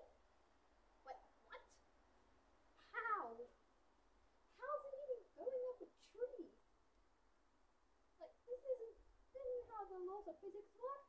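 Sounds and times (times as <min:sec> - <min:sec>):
faint squeaky vocal sounds: 0:02.8 - 0:03.6.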